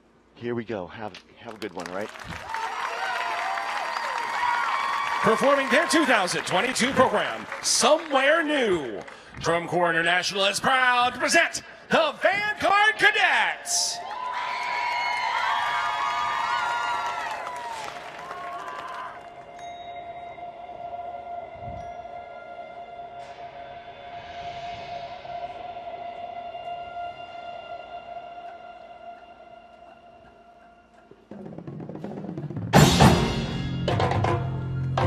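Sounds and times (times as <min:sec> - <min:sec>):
crowd cheering and whistling: 0:02.4 - 0:09.0, 0:13.8 - 0:19.6
drum corps percussion: 0:28.5 - 0:35.0.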